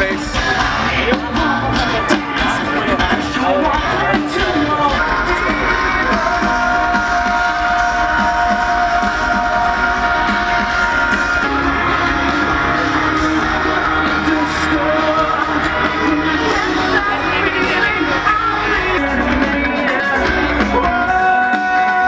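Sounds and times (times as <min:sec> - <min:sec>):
steady drum beat: 0:00.0 - 0:22.0.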